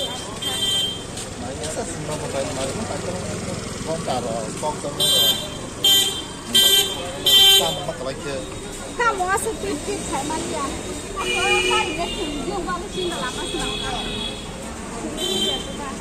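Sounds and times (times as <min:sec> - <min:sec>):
vehicle horn honks: 0:00.0 - 0:01.1, 0:05.0 - 0:08.0, 0:11.2 - 0:14.6, 0:15.2 - 0:15.8
people talking: 0:00.0 - 0:16.0
street traffic: 0:00.0 - 0:16.0.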